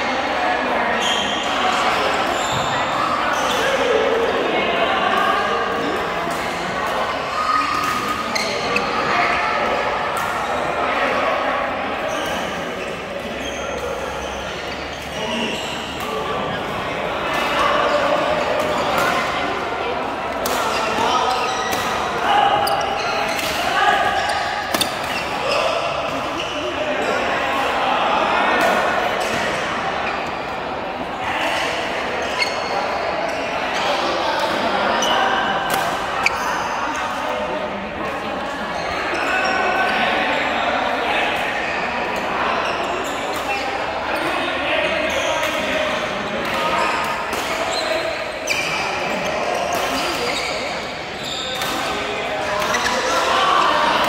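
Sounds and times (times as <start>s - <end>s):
chatter of voices: 0.0s - 54.0s.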